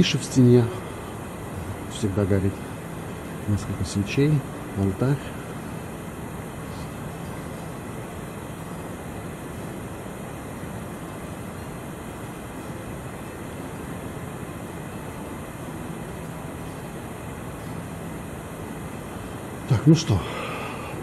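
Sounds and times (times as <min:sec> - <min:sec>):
hiss and low rumble: 0:00.0 - 0:21.0.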